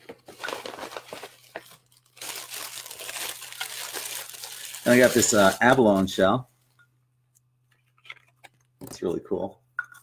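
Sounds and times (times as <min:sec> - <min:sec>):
wrapping crinkling and rustling: 0:00.0 - 0:06.4.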